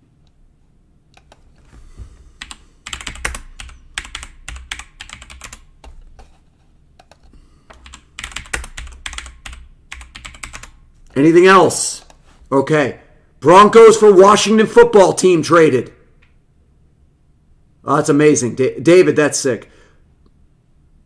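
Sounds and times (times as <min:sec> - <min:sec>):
computer keyboard typing: 0:01.1 - 0:01.7, 0:02.4 - 0:06.4, 0:07.0 - 0:10.9.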